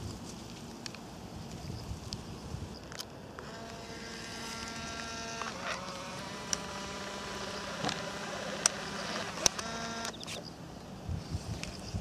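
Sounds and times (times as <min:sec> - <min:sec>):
camera motor whirring: 0:02.9 - 0:10.4
camera shutter click: 0:07.6 - 0:10.4
short camera click: 0:08.6 - 0:10.4.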